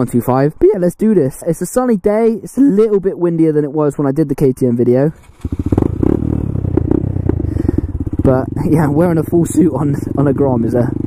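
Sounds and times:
motorcycle engine exhaust pulses: 0:05.2 - 0:11.0.

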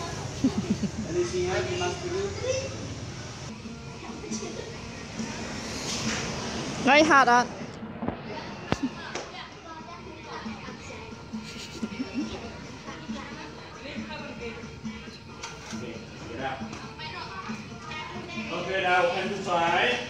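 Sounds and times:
music playing: 0:00.0 - 0:20.0.

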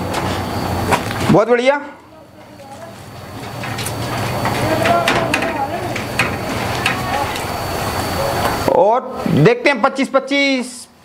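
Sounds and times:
low background voices: 0:02.0 - 0:09.3.

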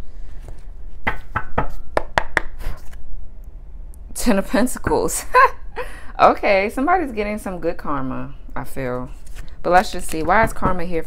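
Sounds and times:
cards being shuffled: 0:02.4 - 0:03.1, 0:09.1 - 0:10.3.

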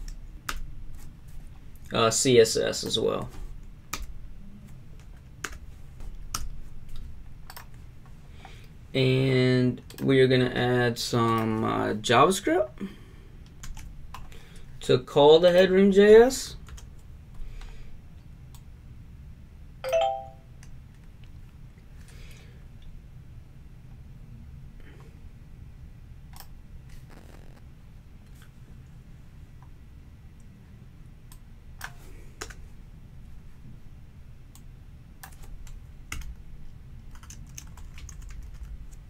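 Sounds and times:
steady low hum: 0:00.0 - 0:39.0
computer keyboard typing: 0:06.2 - 0:07.8, 0:13.6 - 0:14.2, 0:35.2 - 0:36.4, 0:37.1 - 0:39.0
two-note chime: 0:19.8 - 0:20.5.

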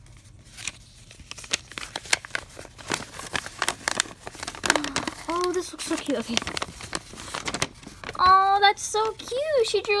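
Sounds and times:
paper crinkling and rustling: 0:00.0 - 0:10.0.

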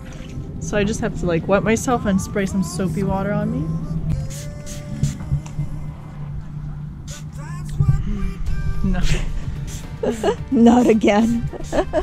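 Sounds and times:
background music: 0:00.0 - 0:12.0
voices: 0:00.0 - 0:12.0.

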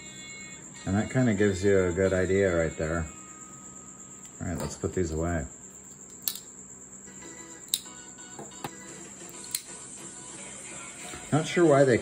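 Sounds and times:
metal knives clicking together: 0:06.2 - 0:06.5, 0:09.5 - 0:09.7.

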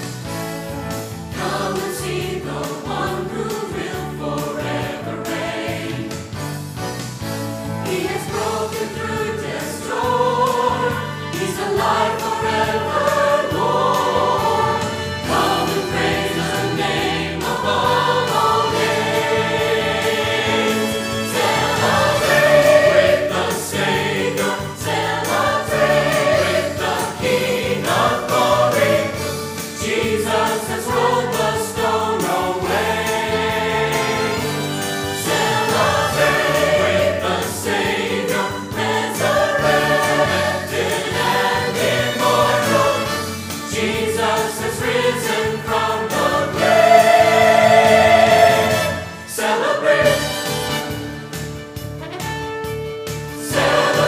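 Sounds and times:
church choir singing: 0:00.7 - 0:06.6, 0:07.6 - 0:51.1, 0:53.4 - 0:54.0.

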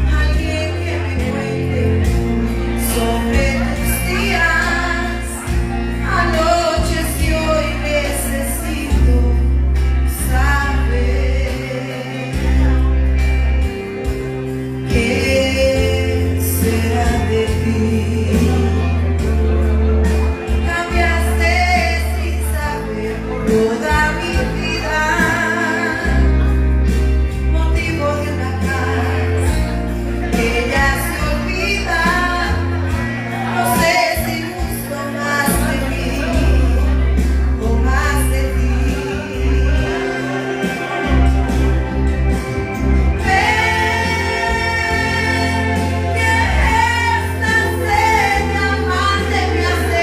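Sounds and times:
woman singing into a microphone: 0:00.0 - 0:19.5, 0:20.1 - 0:41.7, 0:43.0 - 0:50.0
karaoke backing track: 0:00.0 - 0:50.0
strong bass line: 0:00.0 - 0:50.0.

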